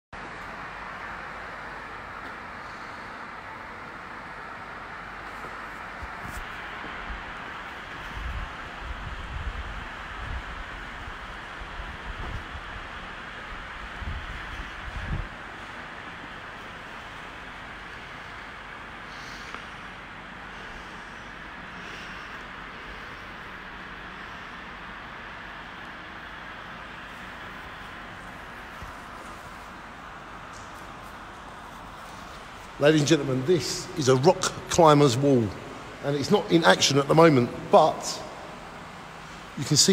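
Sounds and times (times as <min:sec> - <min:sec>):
steady background hiss: 0:00.2 - 0:39.9.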